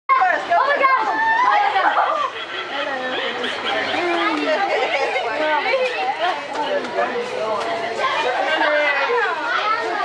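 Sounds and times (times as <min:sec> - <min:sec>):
people chattering: 0:00.1 - 0:10.0.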